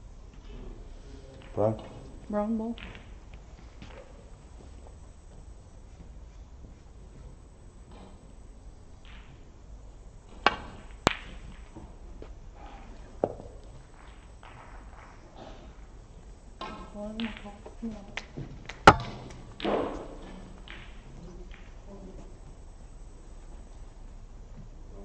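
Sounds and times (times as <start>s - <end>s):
cue striking ball: 10.4s - 11.6s, 18.7s - 21.0s
snooker balls clicking: 16.6s - 21.8s
soft ball knock: 18.9s - 19.9s.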